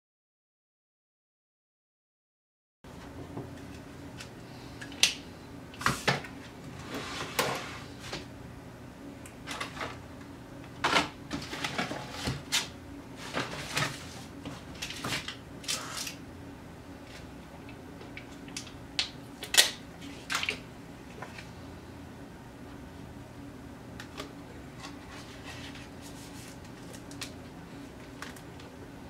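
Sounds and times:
paper and plastic handled: 24.1 - 27.4.

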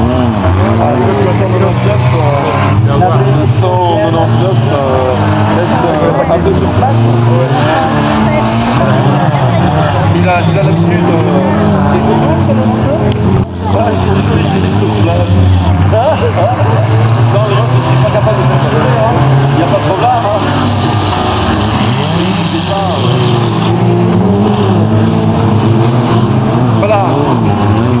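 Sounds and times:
race car engines revving: 0.0 - 28.0
voices talking: 0.0 - 28.0.

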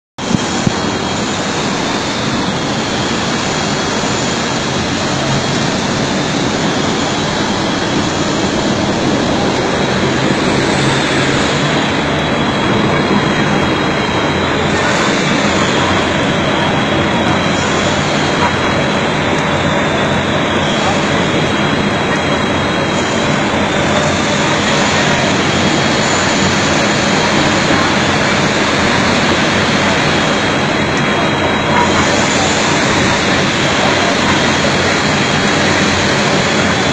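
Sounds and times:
stranding machine running: 0.2 - 36.9.

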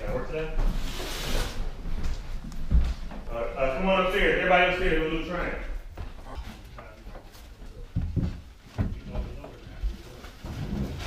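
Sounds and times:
furniture thumps and knocks: 8.0 - 9.2.

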